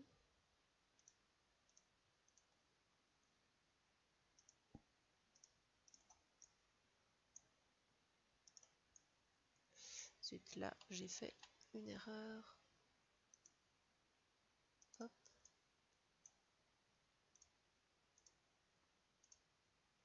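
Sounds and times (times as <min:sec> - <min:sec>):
faint computer mouse clicks: 0:01.0 - 0:02.5, 0:04.4 - 0:06.6, 0:08.4 - 0:09.1, 0:13.3 - 0:13.6, 0:17.3 - 0:17.6, 0:18.2 - 0:18.4, 0:19.2 - 0:19.5.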